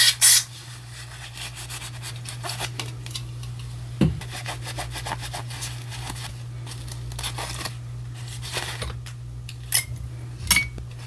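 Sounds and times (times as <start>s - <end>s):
paper towel rustling: 0.5s - 2.8s, 4.2s - 8.9s.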